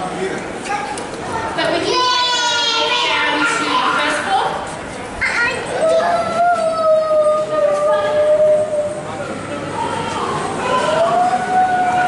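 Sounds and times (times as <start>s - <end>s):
children calling and chattering: 0.4s - 12.0s.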